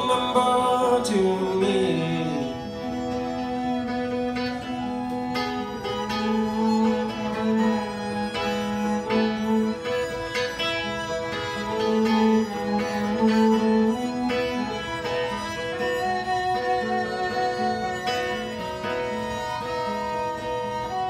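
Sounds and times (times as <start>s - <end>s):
bowed fiddle melody: 0.0s - 21.0s
plucked guitar: 0.0s - 21.0s.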